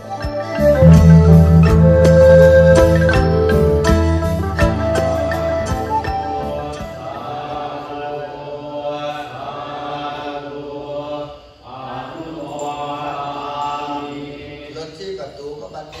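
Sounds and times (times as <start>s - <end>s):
group chanting: 6.3s - 14.8s.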